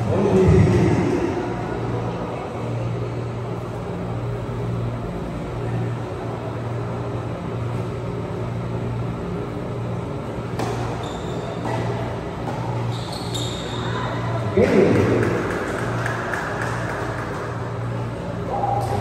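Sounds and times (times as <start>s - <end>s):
racket hitting tennis ball: 10.6s - 10.9s, 11.6s - 12.9s.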